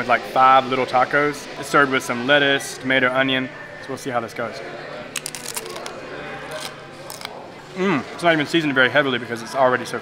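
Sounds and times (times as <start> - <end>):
crunchy biting and chewing: 5.1 - 7.9.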